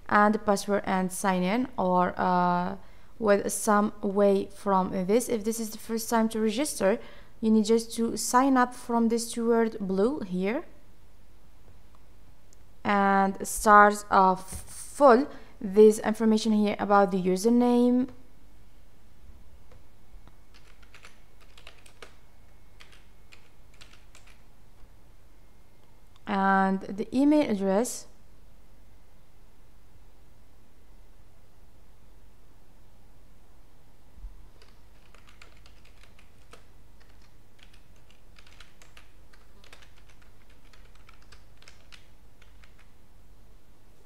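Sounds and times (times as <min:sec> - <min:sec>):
steady low hum: 0:00.0 - 0:44.0
keyboard typing: 0:19.7 - 0:22.2, 0:22.8 - 0:24.5, 0:34.6 - 0:43.0.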